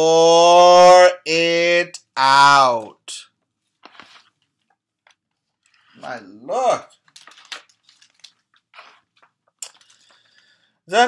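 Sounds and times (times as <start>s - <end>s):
faint ticks of pages turning: 3.4s - 6.0s, 7.0s - 10.3s
papery rustle: 3.6s - 6.0s, 7.0s - 10.3s.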